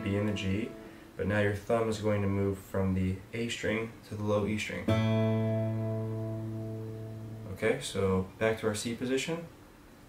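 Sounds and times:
acoustic guitar chord ringing: 0:00.0 - 0:01.4, 0:04.8 - 0:07.8.

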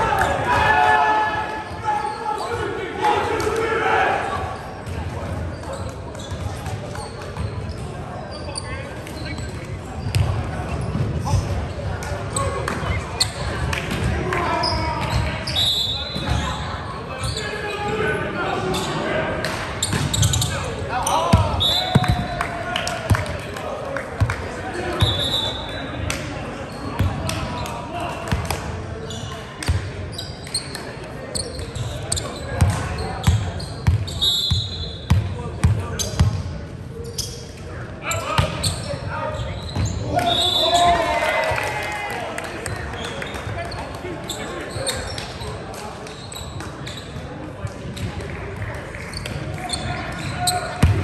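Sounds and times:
players shouting and chatting: 0:00.0 - 0:51.0
sneakers squeaking on court: 0:04.6 - 0:17.8, 0:19.8 - 0:22.4, 0:26.6 - 0:27.7, 0:28.3 - 0:40.5, 0:43.0 - 0:48.3, 0:49.0 - 0:51.0
volleyball hit and bouncing: 0:50.8 - 0:51.0.

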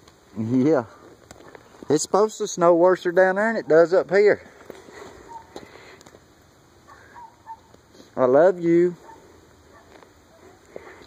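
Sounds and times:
faint bird chirps: 0:05.2 - 0:05.6, 0:06.9 - 0:07.7.

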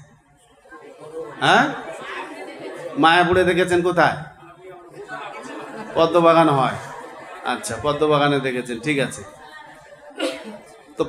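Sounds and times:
murmur of voices: 0:00.0 - 0:11.0
man speaking through microphone: 0:01.4 - 0:01.9, 0:03.0 - 0:04.6, 0:05.9 - 0:09.3.

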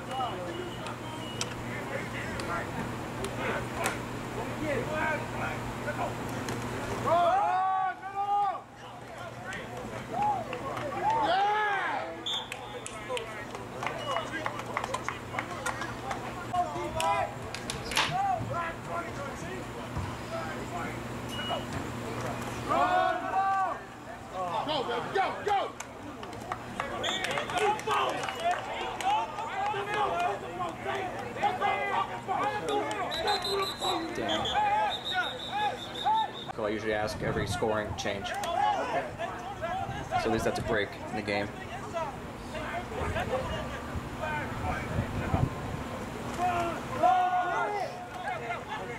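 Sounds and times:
people shouting and calling: 0:07.0 - 0:19.9, 0:22.6 - 0:36.5, 0:37.3 - 0:45.0, 0:46.3 - 0:48.9.

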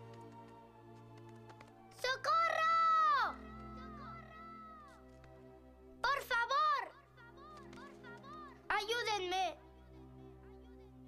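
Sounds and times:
soft background music: 0:00.0 - 0:11.0
child crying for help: 0:02.1 - 0:05.0.

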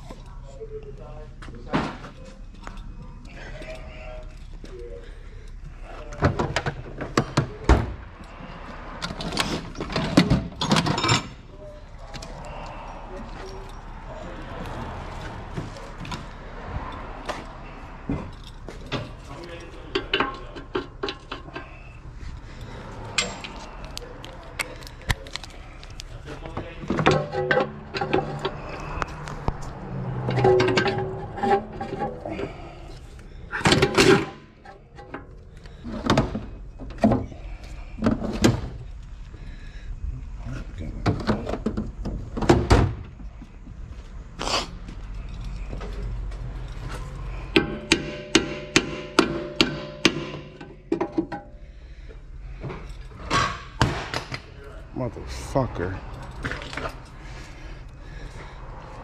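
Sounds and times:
indistinct voices: 0:00.0 - 0:42.4, 0:49.8 - 0:59.0
metal tools clinking: 0:09.1 - 0:11.4, 0:15.1 - 0:29.4.

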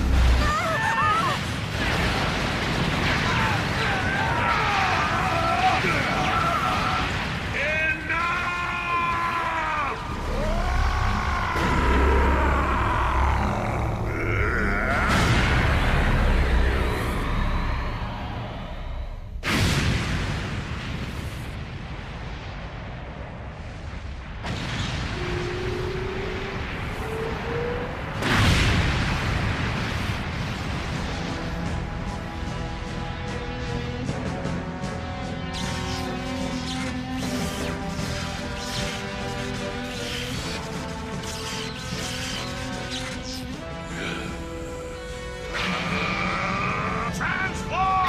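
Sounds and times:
dramatic soundtrack music: 0:00.0 - 0:23.0, 0:23.7 - 0:48.0
sci-fi blasts and explosions: 0:00.0 - 0:48.0.

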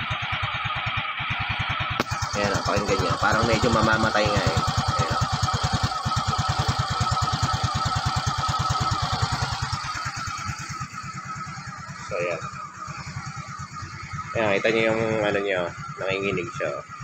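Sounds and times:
scooter engine idling: 0:00.0 - 0:17.0.

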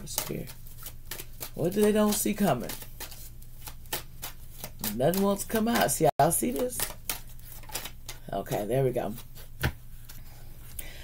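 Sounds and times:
cards being shuffled: 0:00.0 - 0:10.8.

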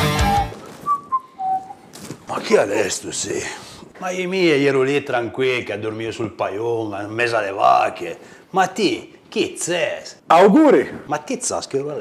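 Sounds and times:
short whistled notes: 0:00.0 - 0:01.9.

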